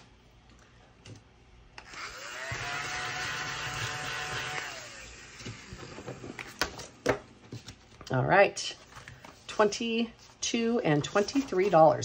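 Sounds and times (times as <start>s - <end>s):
small electric motor whirring: 1.8s - 6.3s.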